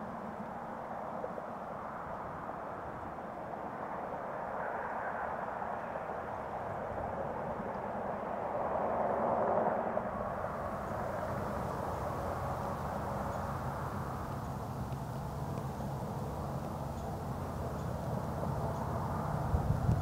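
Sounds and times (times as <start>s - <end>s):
distant road traffic hum: 0.0s - 20.0s.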